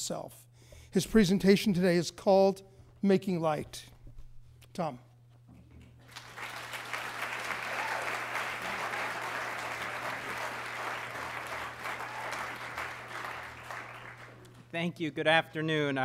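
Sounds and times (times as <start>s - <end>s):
audience applauding: 6.0s - 14.6s.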